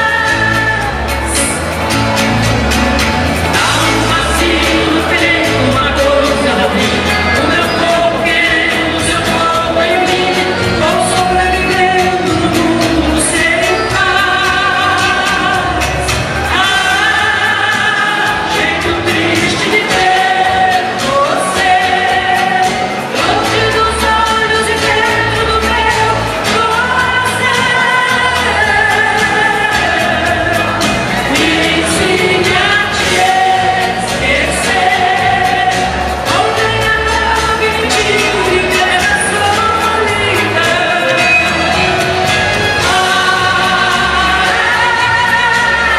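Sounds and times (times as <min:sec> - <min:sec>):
woman singing through microphone: 0:00.0 - 0:02.2, 0:03.3 - 0:45.9
backing music with bass beat: 0:00.0 - 0:45.9.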